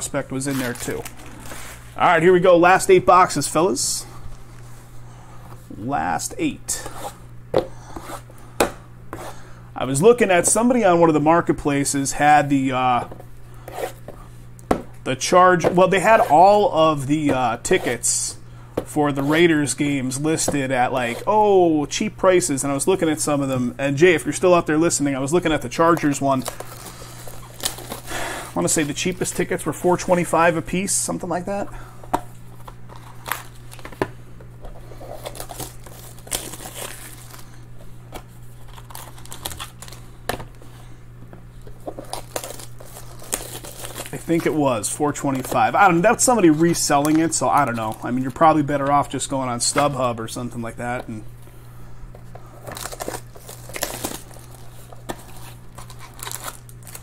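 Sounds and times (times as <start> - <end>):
foil pack crinkling: 0.0 - 2.3, 25.2 - 30.4, 32.4 - 34.0, 34.7 - 40.6, 41.6 - 49.7, 52.3 - 57.0.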